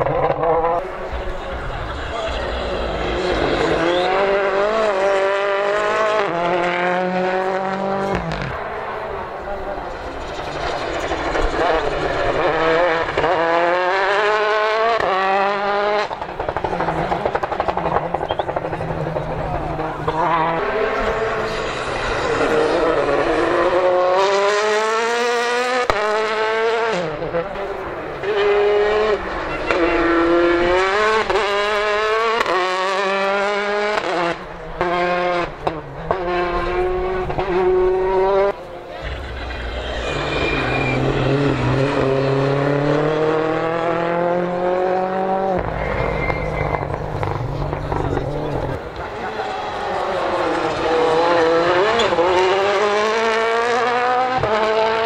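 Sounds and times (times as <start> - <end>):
rally cars accelerating hard: 0.0 - 55.0.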